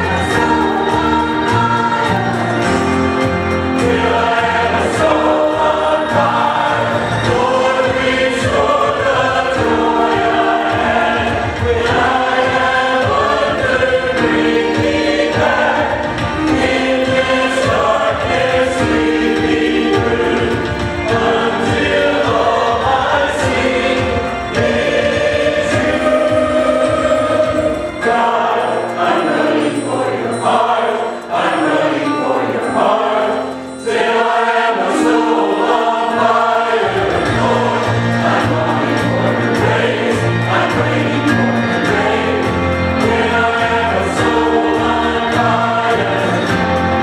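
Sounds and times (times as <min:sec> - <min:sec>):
choir singing gospel song: 0:00.0 - 0:47.0.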